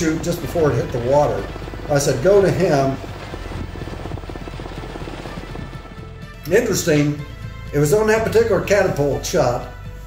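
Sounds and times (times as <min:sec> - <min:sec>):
helicopter rotor beating: 0:00.0 - 0:08.3
music: 0:00.0 - 0:10.0.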